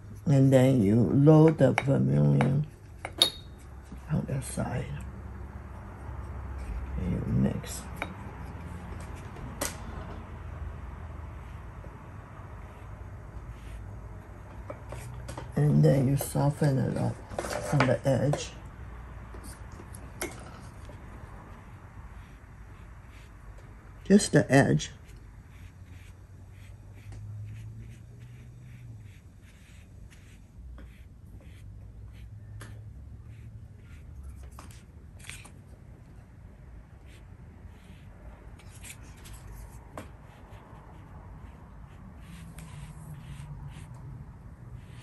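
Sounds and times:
low room hum: 0.0 - 45.0
brushes rubbing and tapping on paper: 12.6 - 18.5, 22.2 - 23.7, 25.0 - 35.5, 37.1 - 44.1, 44.8 - 45.0.

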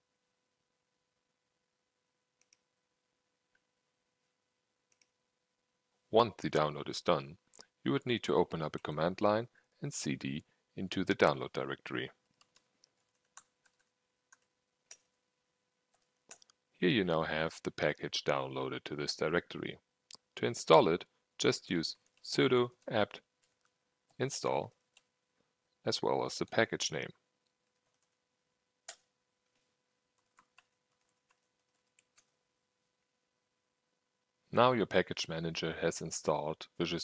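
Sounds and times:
faint steady hum: 0.0 - 37.0.

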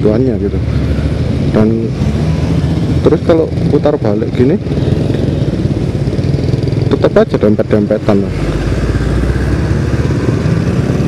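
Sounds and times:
scooter engine running: 0.4 - 11.0.

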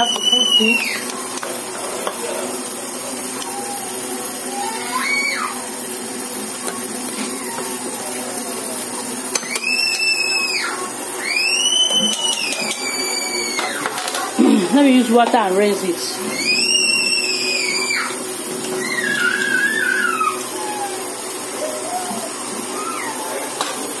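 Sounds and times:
high whining tones: 0.0 - 24.0
machine hum: 0.0 - 24.0.

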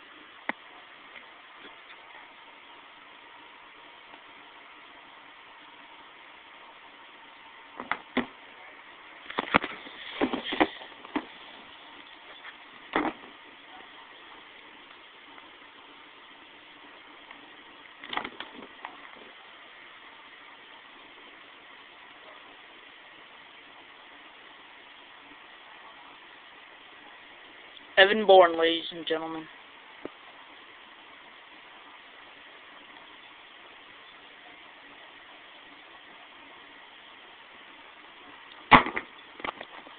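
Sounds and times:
faint steady hiss: 0.0 - 39.9.

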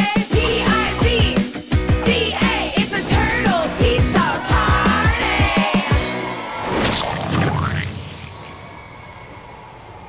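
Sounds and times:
hissing sound effect: 6.8 - 9.0.

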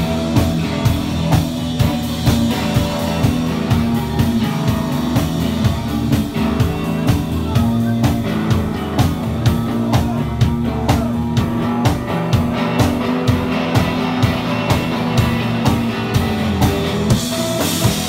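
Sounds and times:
bass guitar: 0.0 - 18.0
drum kit beat: 0.0 - 18.0
electric guitar: 0.0 - 18.0.

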